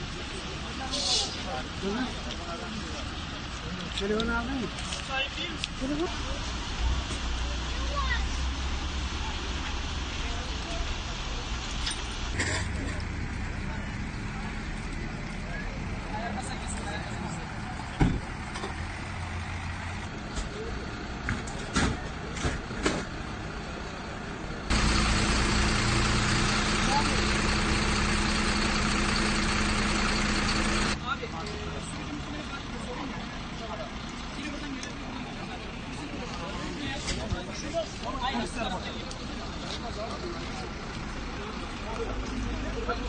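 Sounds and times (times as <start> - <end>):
vehicle engine humming: 0.0 - 43.0
vehicle noise: 0.0 - 43.0.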